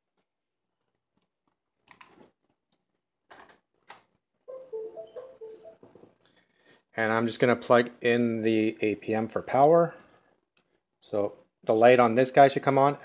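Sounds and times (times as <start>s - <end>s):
cables handled clicking and rustling: 0.0s - 4.2s.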